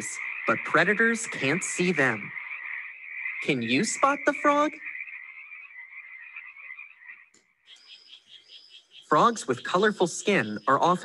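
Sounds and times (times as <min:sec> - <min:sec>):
higher pulsing frog call: 0:00.0 - 0:10.8
frog rapid pulsing call: 0:00.0 - 0:11.0.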